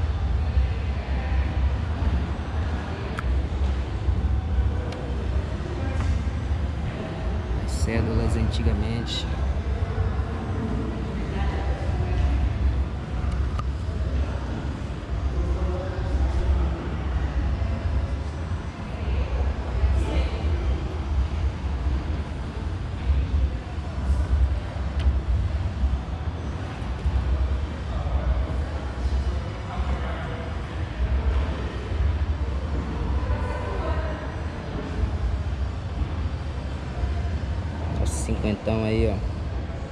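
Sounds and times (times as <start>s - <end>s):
faint indistinct voices: 0.0s - 39.9s.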